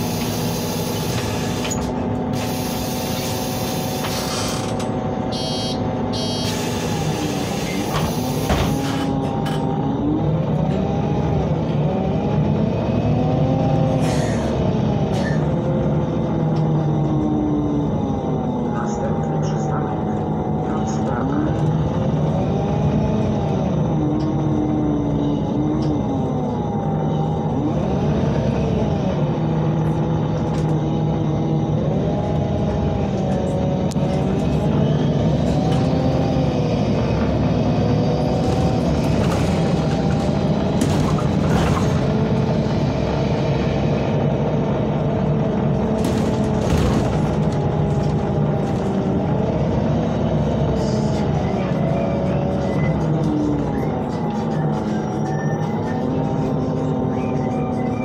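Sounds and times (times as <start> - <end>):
bus engine rumble: 0.0 - 58.0.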